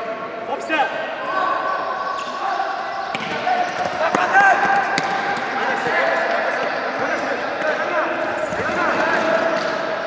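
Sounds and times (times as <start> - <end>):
players and spectators shouting: 0.2 - 10.0.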